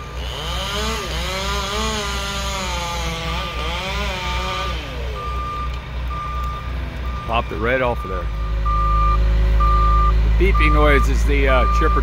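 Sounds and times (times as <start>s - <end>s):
chainsaw cutting wood: 0.0s - 5.8s
truck reversing beeper: 4.4s - 12.0s.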